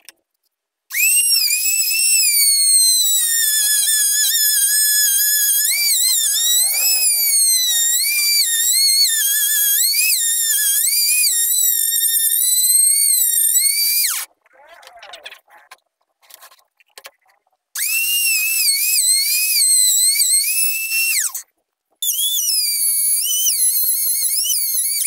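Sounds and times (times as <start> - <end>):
router whining while cutting: 0.9 - 12.6, 17.8 - 19.5.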